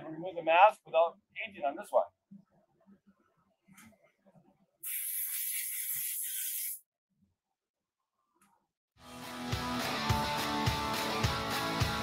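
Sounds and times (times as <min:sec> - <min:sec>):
compressed air hissing: 0:04.8 - 0:06.8.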